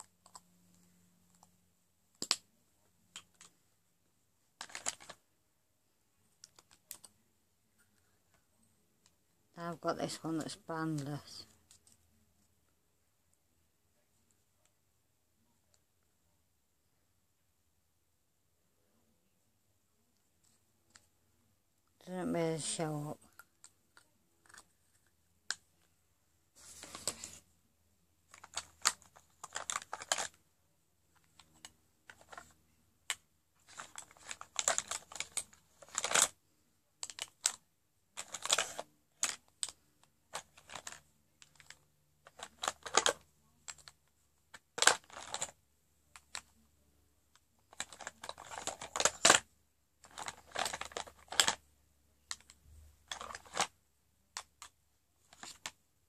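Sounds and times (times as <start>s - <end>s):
plastic rustles: 4.6s - 5.2s, 28.3s - 30.4s, 31.2s - 32.6s, 33.6s - 36.3s, 38.2s - 43.9s, 44.5s - 45.6s, 47.7s - 49.4s, 50.0s - 51.6s, 52.3s - 53.7s.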